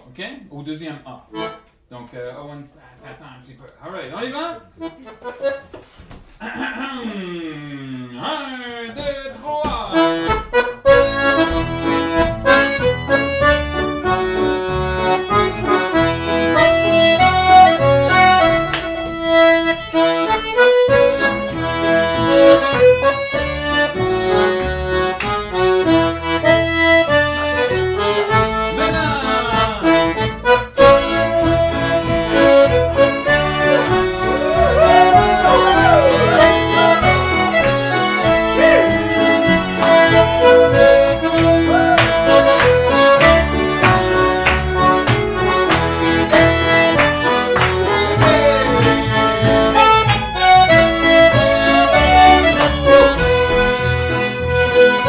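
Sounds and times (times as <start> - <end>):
upright bass: 1.3 - 1.6, 8.9 - 55.0
accordion: 1.3 - 1.9, 4.2 - 6.0, 9.0 - 55.0
feet tapping on wooden board: 9.0 - 54.1
fiddles: 10.0 - 55.0.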